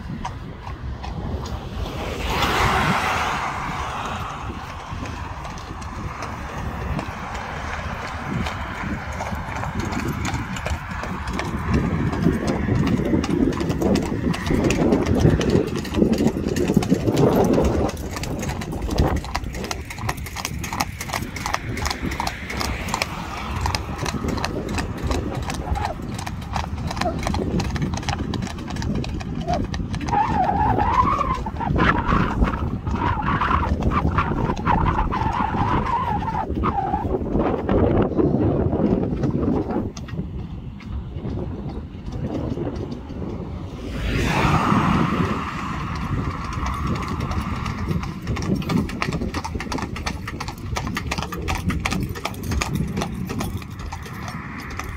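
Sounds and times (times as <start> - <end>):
horse hooves clip-clopping on asphalt: 0.0 - 54.9
road and wind rumble: 0.0 - 54.9.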